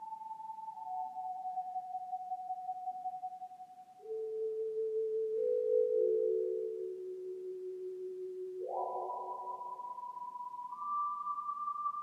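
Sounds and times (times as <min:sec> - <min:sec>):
slow instrumental music held tones: 0:00.0 - 0:12.0.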